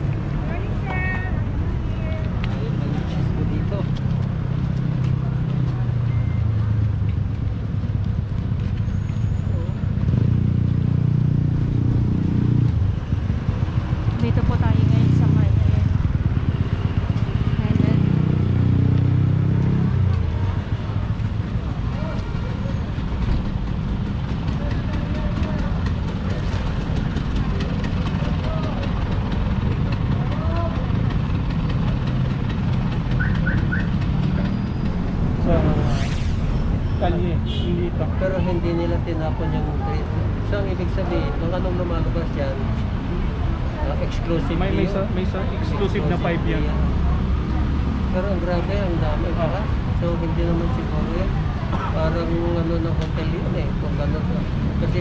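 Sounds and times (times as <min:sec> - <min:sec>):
vehicle engine humming: 0:00.0 - 0:49.6.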